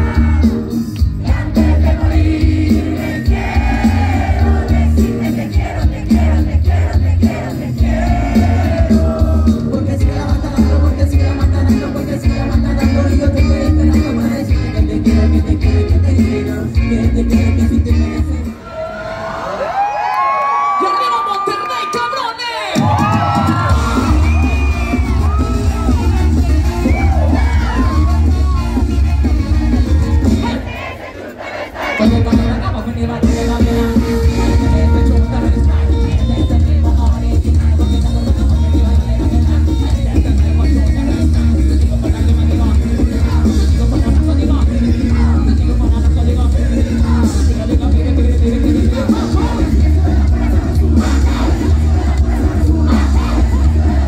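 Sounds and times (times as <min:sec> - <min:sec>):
crowd shouting and singing along: 0:00.0 - 0:54.0
live band through sound system: 0:00.0 - 0:54.0.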